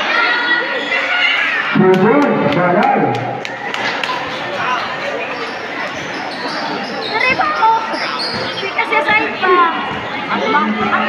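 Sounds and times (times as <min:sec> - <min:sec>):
spectator chatter: 0:00.0 - 0:11.0.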